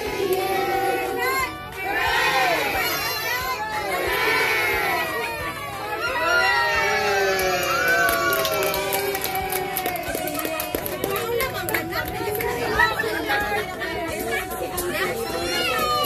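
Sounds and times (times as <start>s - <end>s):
crowd cheering and shouting: 0.4s - 11.0s, 15.0s - 16.0s
hand clapping: 7.9s - 12.7s.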